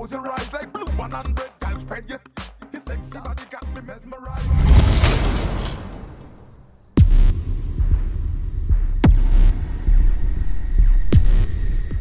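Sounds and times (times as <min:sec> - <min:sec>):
sharp impact hits: 0:04.3 - 0:07.9
deep throbbing bass drone: 0:07.0 - 0:12.0.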